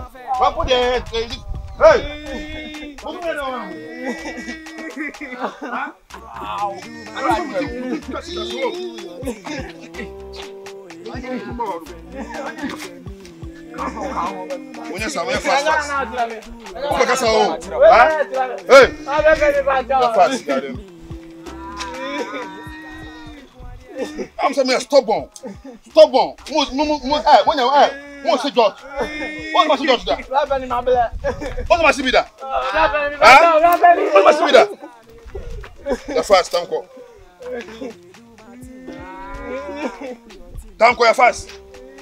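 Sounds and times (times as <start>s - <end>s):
long drawn-out call: 38.5s - 40.1s.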